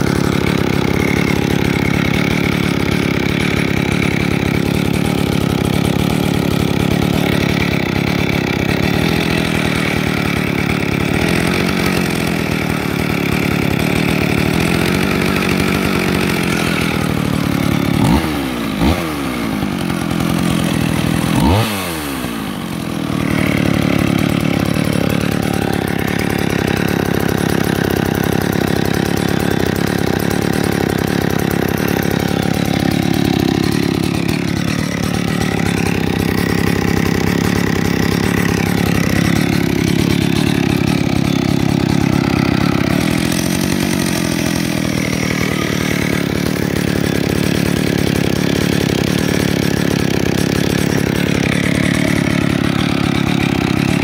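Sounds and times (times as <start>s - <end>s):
chainsaw idling: 0.0s - 54.0s
chainsaw throttle blips: 0.0s - 54.0s.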